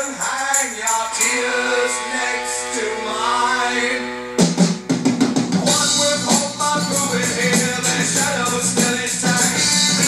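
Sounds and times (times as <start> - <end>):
guitar: 0.0 - 10.0
rock music through speakers: 0.0 - 10.0
bass drum: 4.4 - 10.0
drum kit hit: 4.4 - 10.0.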